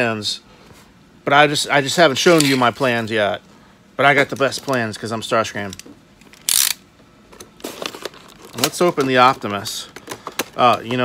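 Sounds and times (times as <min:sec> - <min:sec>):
plastic packaging crackling: 0:07.6 - 0:11.0.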